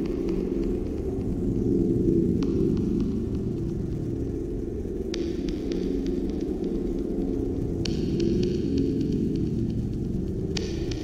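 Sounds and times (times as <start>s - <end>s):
dark ambient drone: 0.0s - 11.0s.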